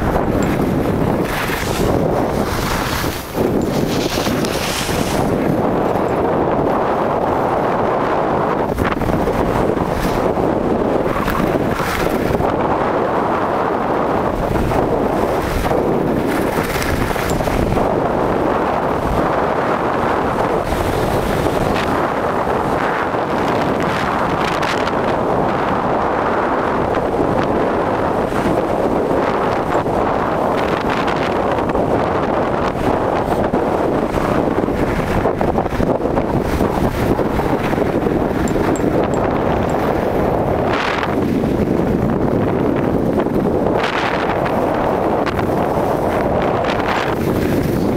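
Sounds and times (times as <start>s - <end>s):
skis scraping on snow: 0.0s - 13.8s, 14.4s - 24.7s
wind roaring over microphone: 0.0s - 47.9s.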